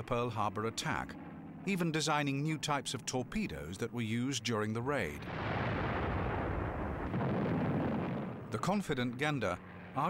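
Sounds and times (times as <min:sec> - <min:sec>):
narration: 0:00.0 - 0:05.3, 0:08.5 - 0:10.0.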